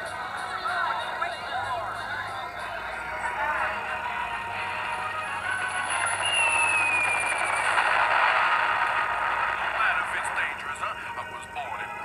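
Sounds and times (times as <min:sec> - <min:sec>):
cartoon music on television: 0:00.0 - 0:12.0
falling whistle tone: 0:05.5 - 0:08.2.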